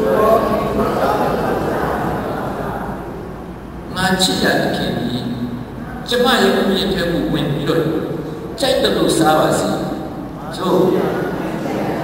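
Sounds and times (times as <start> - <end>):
man speaking into a microphone: 3.9 - 11.6.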